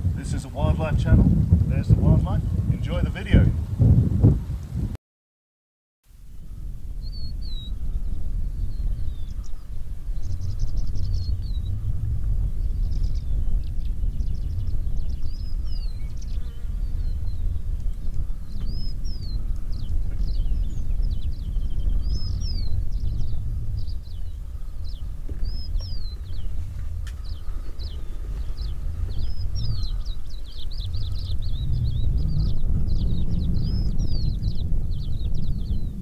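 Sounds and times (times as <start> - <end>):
steady low rumble: 0.0 - 5.0, 6.1 - 36.0
small birds chirping and trilling: 7.0 - 36.0.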